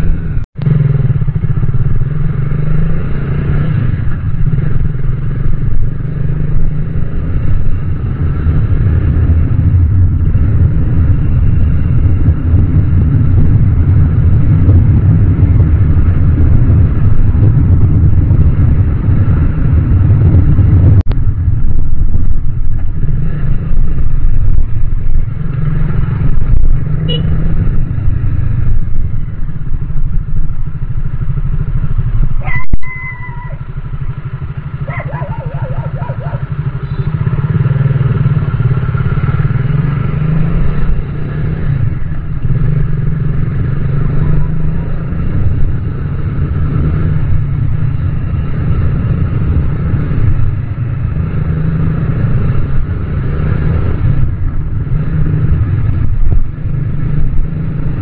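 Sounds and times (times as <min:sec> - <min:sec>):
motorcycle engine running: 0:00.0 - 0:58.0
road and wind noise: 0:00.0 - 0:58.0.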